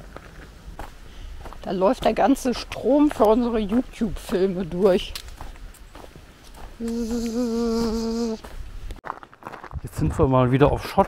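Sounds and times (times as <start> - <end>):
person humming: 6.8 - 8.5.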